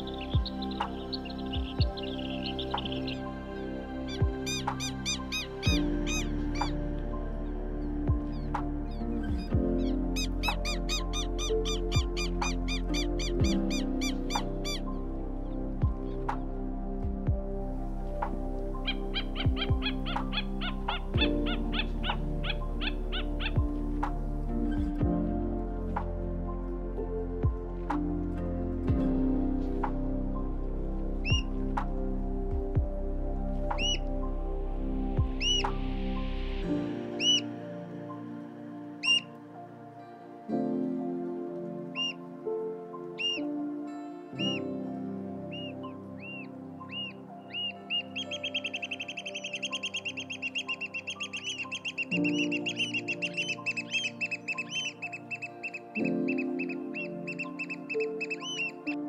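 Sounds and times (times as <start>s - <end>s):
soft background music: 0.0s - 59.0s
oystercatcher piping calls: 4.1s - 6.8s, 9.8s - 14.9s, 18.8s - 23.6s, 33.8s - 34.0s, 35.4s - 35.6s, 37.2s - 37.4s, 39.0s - 39.3s, 41.9s - 42.2s, 43.2s - 43.4s, 45.5s - 58.8s.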